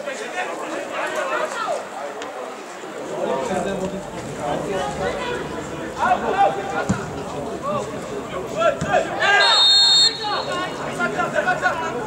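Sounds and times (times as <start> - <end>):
referee's whistle: 9.2 - 10.8.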